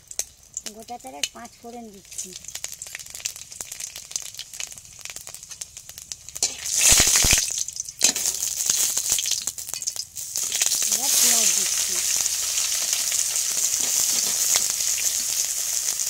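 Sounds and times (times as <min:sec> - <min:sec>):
spices crackling in hot oil: 0:00.0 - 0:16.0.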